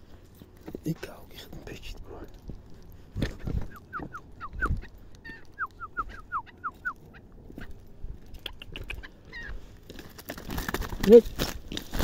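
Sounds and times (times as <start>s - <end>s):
footsteps crunching on stones: 0.0s - 8.4s, 9.4s - 12.0s
partridge calling: 3.2s - 9.6s.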